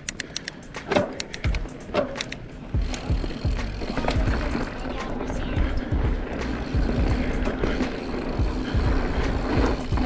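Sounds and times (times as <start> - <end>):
background music: 0.0 - 10.0
bike tyres on dirt trail: 0.6 - 10.0.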